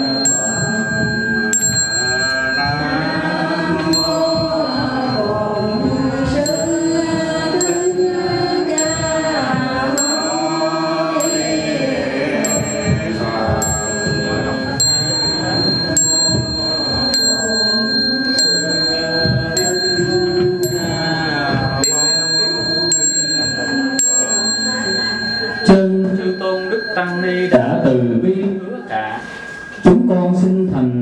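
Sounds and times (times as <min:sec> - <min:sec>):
small high-pitched bell struck: 0:00.0 - 0:28.2
devotional chanting: 0:00.0 - 0:31.0.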